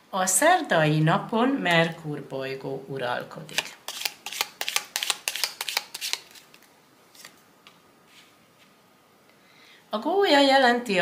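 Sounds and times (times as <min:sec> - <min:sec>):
cards being shuffled: 0:03.5 - 0:07.4.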